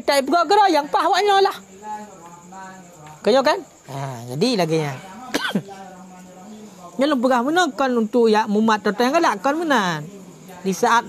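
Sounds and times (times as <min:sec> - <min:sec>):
man clearing throat: 0:05.3 - 0:05.7.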